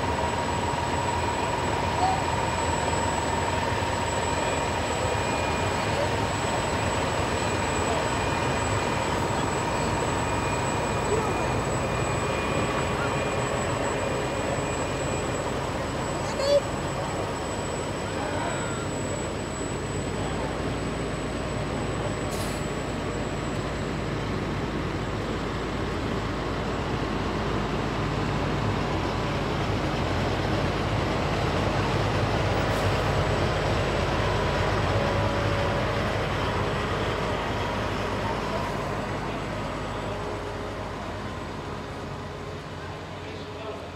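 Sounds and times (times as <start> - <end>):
diesel trucks rumbling past: 0.0 - 43.9.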